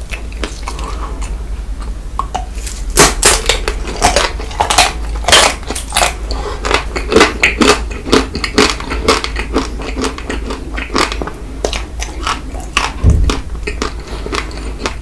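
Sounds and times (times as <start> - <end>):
wet mouth chewing sounds: 0.0 - 15.0
ice cream shell cracking: 2.2 - 15.0.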